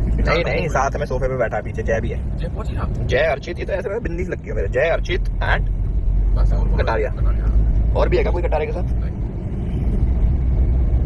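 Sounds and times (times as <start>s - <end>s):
men talking: 0.0s - 9.2s
car cabin rumble: 0.0s - 11.0s.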